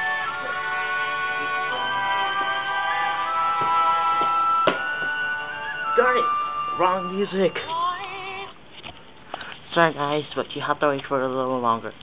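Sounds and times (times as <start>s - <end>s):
music with long held notes: 0.0s - 8.5s.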